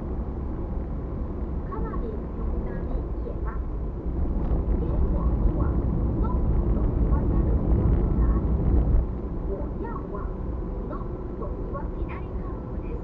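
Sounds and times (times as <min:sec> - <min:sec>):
car tyres and engine rumble: 0:00.0 - 0:13.0.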